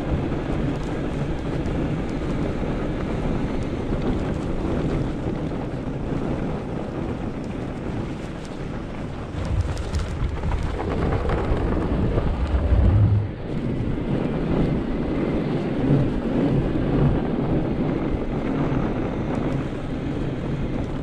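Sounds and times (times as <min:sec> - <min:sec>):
bike tyres rolling over snow: 0:00.0 - 0:21.0
wind buffeting microphone: 0:00.0 - 0:21.0
tyres rumbling on wooden bridge: 0:08.7 - 0:14.6.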